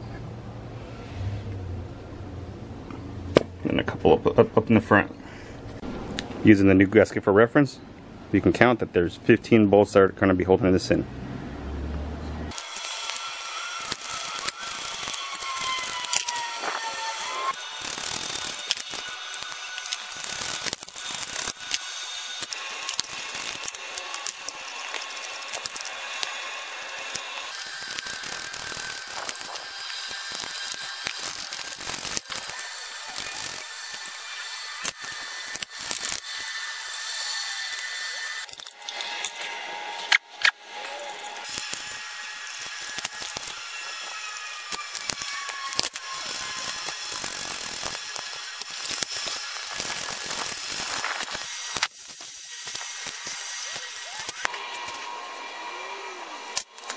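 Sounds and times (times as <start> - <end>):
sharp knock: 5.8 - 6.4
socket ratchet clicking: 17.1 - 32.6.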